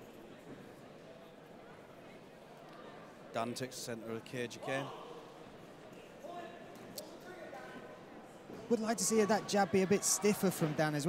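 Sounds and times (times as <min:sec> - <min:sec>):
murmur of spectators' voices: 0:00.0 - 0:11.0.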